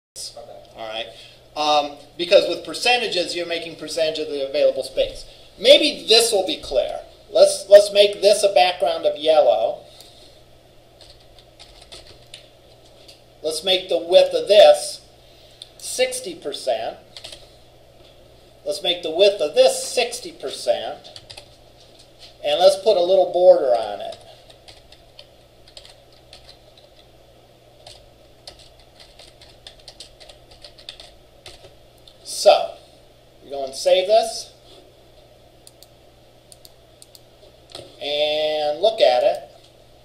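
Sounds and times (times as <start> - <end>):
low room hum: 0.2 - 40.0
keyboard typing: 11.0 - 13.2, 17.1 - 17.4, 21.1 - 22.1, 24.0 - 27.1, 27.8 - 31.8.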